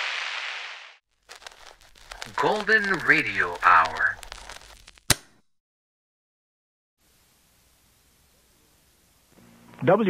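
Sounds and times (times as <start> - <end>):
faint crackling: 1.1 - 5.4
sharp click: 5.0 - 5.4.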